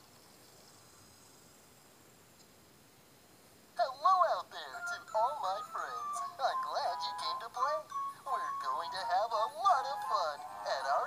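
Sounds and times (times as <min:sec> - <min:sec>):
backing music: 0:04.8 - 0:11.0.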